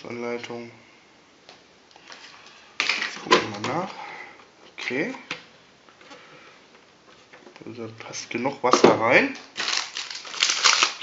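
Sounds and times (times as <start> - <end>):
paper and plastic handling: 8.7 - 11.0.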